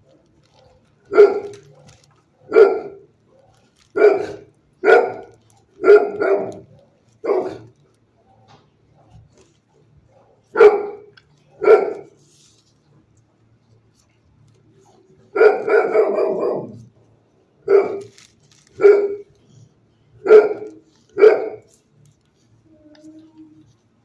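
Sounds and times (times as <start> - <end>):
dog barking with echo: 1.1 - 1.5, 2.4 - 3.0, 4.0 - 7.7, 10.2 - 12.2, 15.4 - 16.8, 17.7 - 18.1, 18.8 - 19.3, 20.2 - 21.7.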